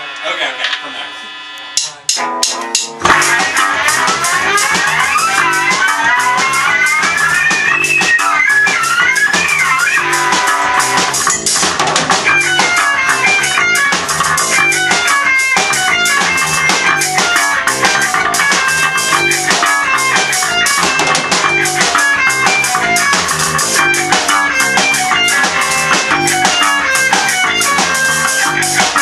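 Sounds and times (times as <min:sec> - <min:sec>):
drum kit: 0:00.0 - 0:29.0
electric guitars: 0:00.0 - 0:29.0.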